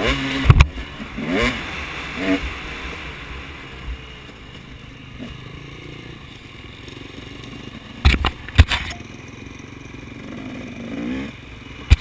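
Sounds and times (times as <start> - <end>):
dirt bike engine revving: 0.0 - 12.0.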